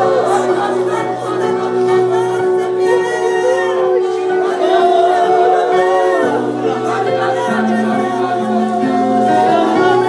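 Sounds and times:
congregation singing: 0:00.0 - 0:10.0.

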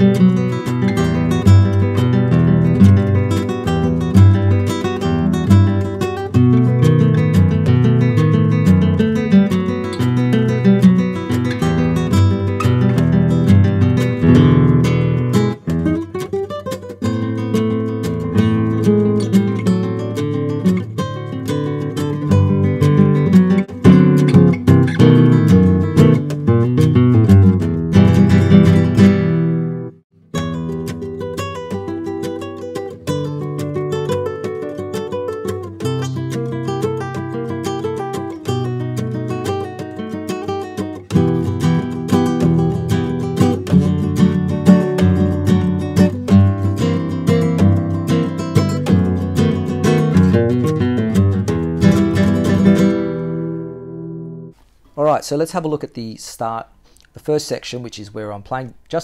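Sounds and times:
flamenco guitar playing: 0:00.0 - 0:54.8.

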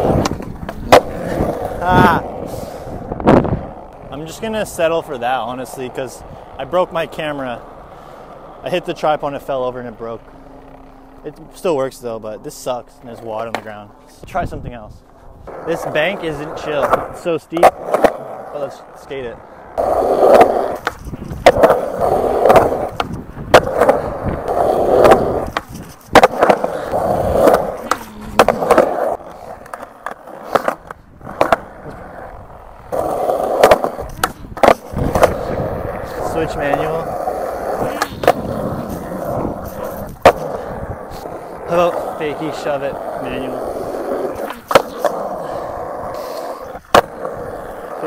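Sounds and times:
skateboard tail clacks and landings: 0:00.0 - 0:04.1, 0:16.7 - 0:18.5, 0:19.8 - 0:42.0, 0:43.0 - 0:48.0
skateboard wheels rolling on concrete: 0:00.0 - 0:48.0.

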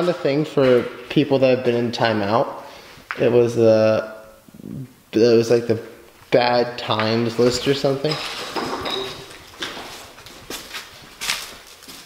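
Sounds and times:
hard objects clinking and knocking: 0:08.1 - 0:09.9.

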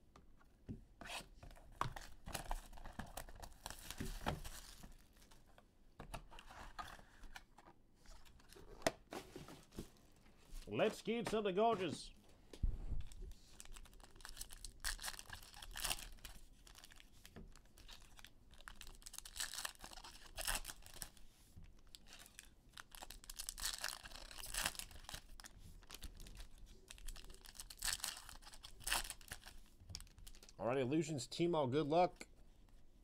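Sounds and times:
foil wrapper tearing and crinkling: 0:13.5 - 0:21.2, 0:21.9 - 0:30.6.

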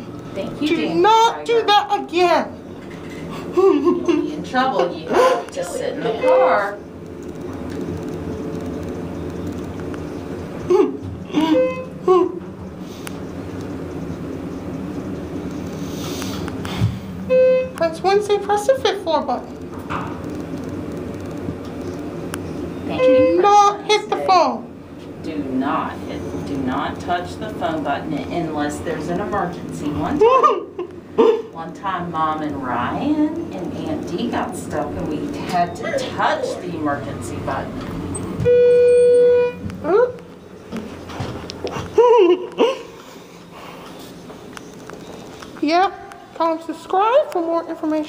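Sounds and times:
elevator low hum: 0:00.0 - 0:48.0
elevator electronic beep: 0:38.1 - 0:39.7.

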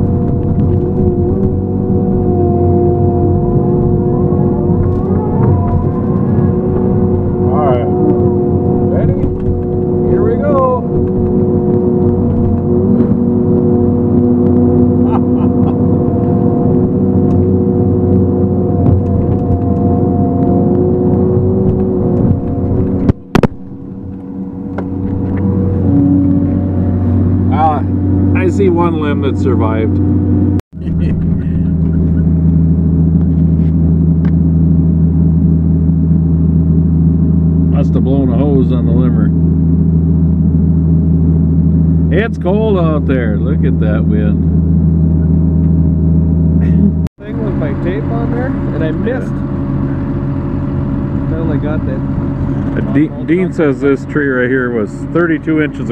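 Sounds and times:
diesel engine and hydraulics: 0:00.0 - 0:55.9
rising and falling whines: 0:00.0 - 0:55.9.

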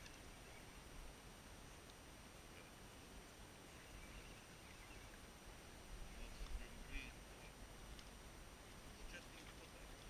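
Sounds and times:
faint bird chirps: 0:00.0 - 0:01.0, 0:03.6 - 0:05.3.

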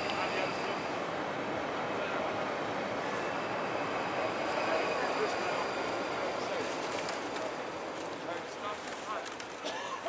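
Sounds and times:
train running over bridge: 0:00.0 - 0:10.0
wheels squealing: 0:03.0 - 0:08.3.

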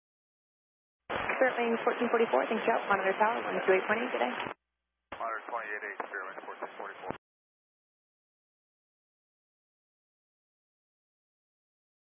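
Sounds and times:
pilot's voice over radio: 0:05.2 - 0:07.2.

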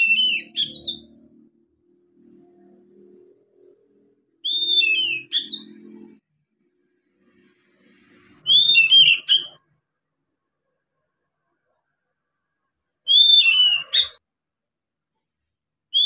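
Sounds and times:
bird singing whistled notes: 0:00.0 - 0:01.3, 0:04.4 - 0:05.8, 0:08.4 - 0:09.7, 0:13.1 - 0:14.2.

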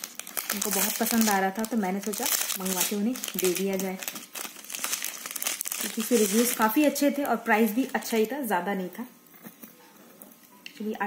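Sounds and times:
plastic bag crinkling: 0:00.0 - 0:08.3.

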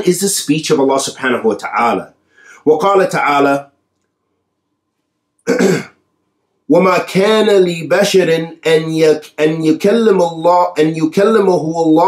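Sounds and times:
man clearing his throat: 0:05.4 - 0:06.0.

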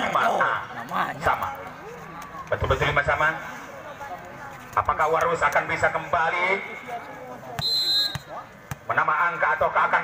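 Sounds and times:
referee's whistle blast: 0:07.6 - 0:08.3.

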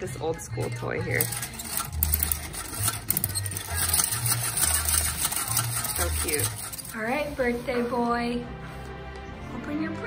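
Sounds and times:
toy game clicking clatter: 0:01.1 - 0:07.0.

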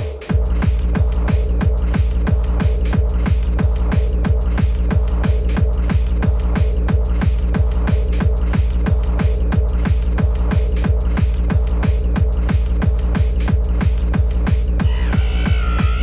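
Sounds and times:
kick drum: 0:00.0 - 0:16.0.

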